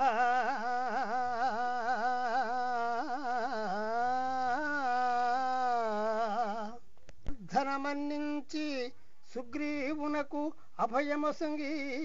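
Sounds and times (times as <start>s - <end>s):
person singing wordless melody: 0.0s - 12.0s.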